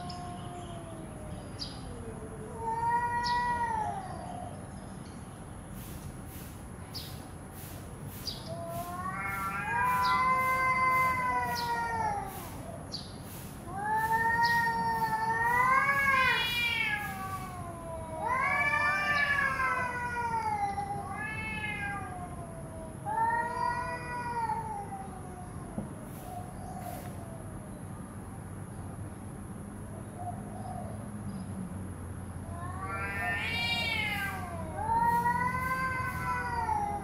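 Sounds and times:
cats yowling: 0.0 - 4.7, 8.5 - 27.6, 32.4 - 37.0.

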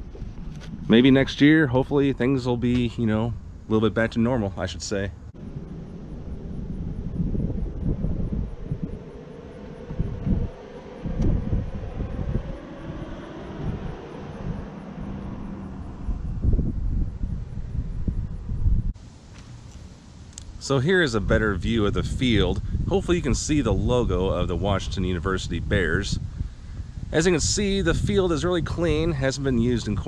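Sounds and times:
wind buffeting microphone: 0.0 - 19.1, 20.5 - 30.0
airplane droning overhead: 0.0 - 30.0.

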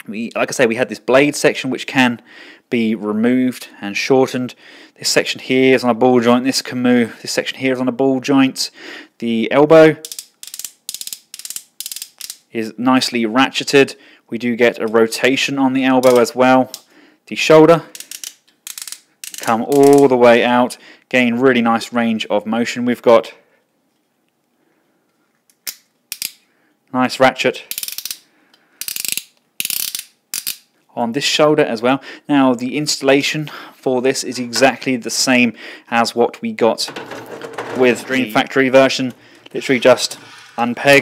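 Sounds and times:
plastic ratchet joint clicking: 10.0 - 12.4, 17.9 - 20.0, 27.7 - 28.2, 28.8 - 30.6.

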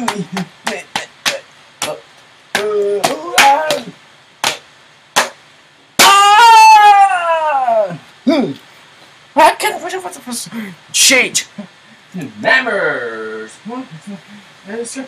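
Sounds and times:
person making wordless sounds: 0.0 - 4.6, 6.0 - 8.7, 9.4 - 15.0
long falling cry: 2.6 - 4.0, 6.0 - 8.5.

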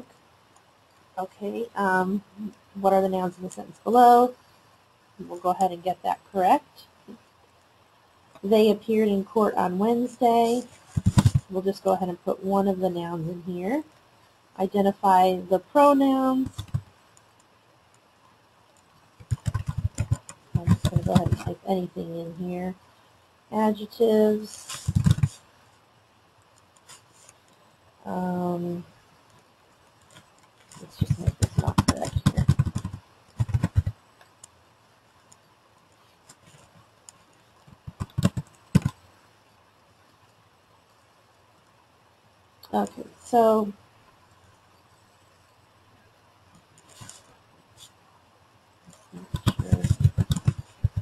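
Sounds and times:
computer keyboard keystrokes: 19.2 - 21.5, 31.1 - 33.9, 37.8 - 39.0, 49.4 - 51.0.

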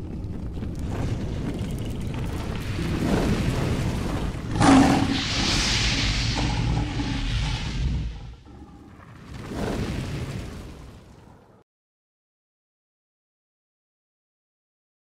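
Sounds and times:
low rumble: 0.0 - 11.5
hissing rush: 2.0 - 10.6
sudden boom: 3.6 - 8.7.

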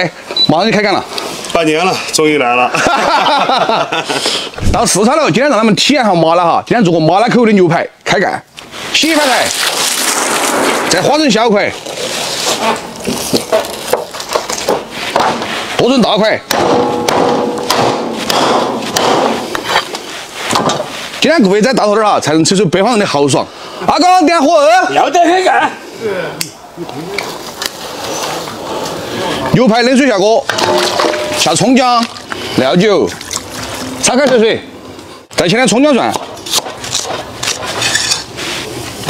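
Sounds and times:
cleaver chopping on wooden board: 16.5 - 19.4.

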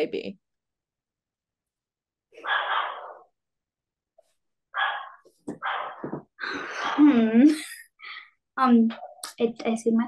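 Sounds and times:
breathy exhalations: 6.0 - 7.1.

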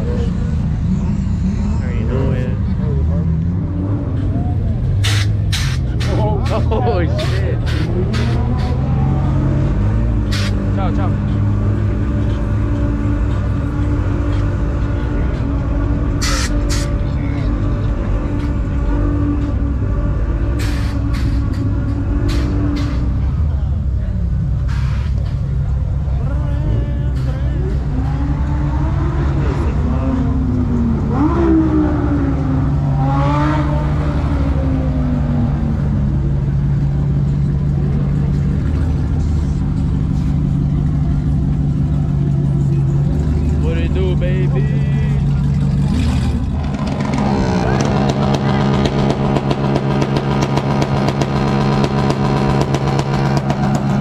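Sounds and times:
engine revving: 0.0 - 25.3, 26.2 - 54.0
car engines running: 0.0 - 54.0
crowd voices: 0.0 - 54.0.

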